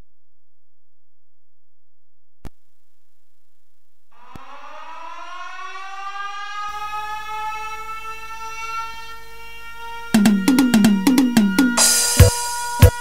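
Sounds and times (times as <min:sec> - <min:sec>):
siren-like rising tone: 0:04.2 - 0:13.0
drums: 0:10.2 - 0:13.0.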